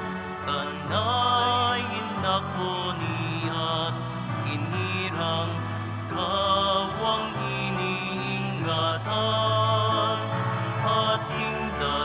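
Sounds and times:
person singing a hymn: 0.0s - 12.0s.

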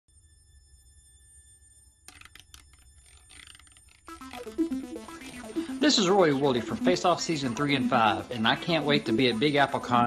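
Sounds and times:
logo music: 4.1s - 10.0s.

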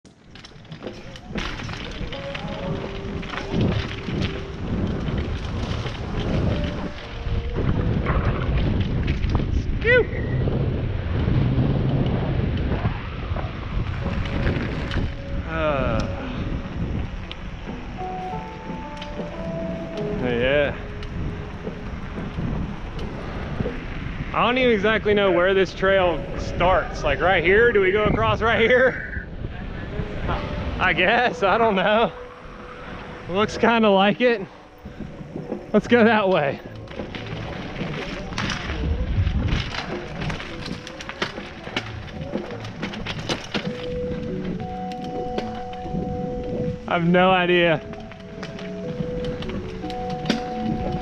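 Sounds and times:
bike tyres rolling: 0.0s - 51.0s
wind buffeting microphone: 0.0s - 51.0s.

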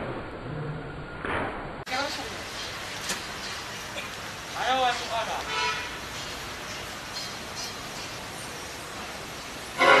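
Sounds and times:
outdoor background hiss: 1.6s - 10.0s
loud sustained horn tone: 9.8s - 10.0s.

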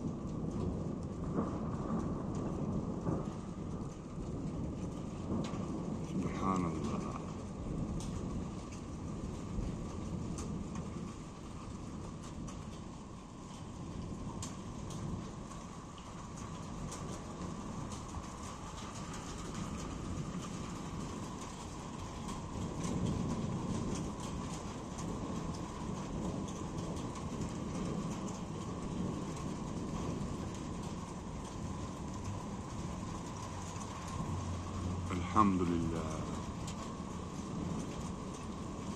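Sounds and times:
raindrops ticking on a surface: 0.0s - 38.9s
steady rain: 0.0s - 38.9s
thunder rumble: 0.0s - 38.9s.

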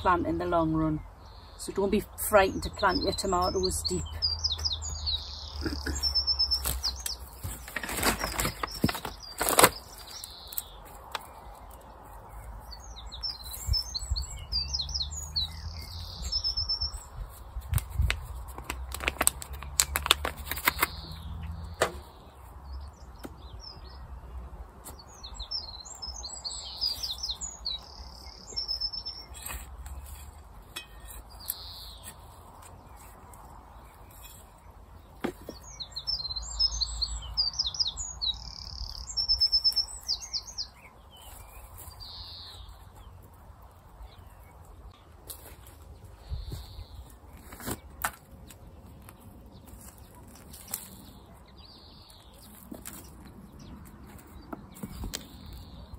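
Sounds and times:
songbird chirping and trilling: 0.0s - 18.6s, 19.3s - 55.9s
plant pot and soil handled: 5.6s - 12.7s, 17.0s - 21.1s, 29.2s - 34.6s, 46.6s - 51.3s, 52.1s - 55.7s.

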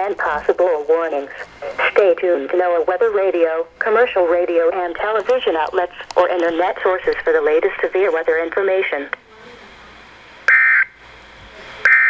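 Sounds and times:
weather radio hiss: 0.0s - 10.6s.

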